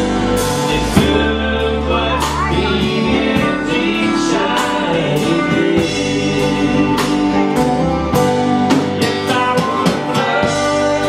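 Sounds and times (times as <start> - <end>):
steel guitar notes: 0.0 - 9.6
drum kit hits: 0.0 - 11.0.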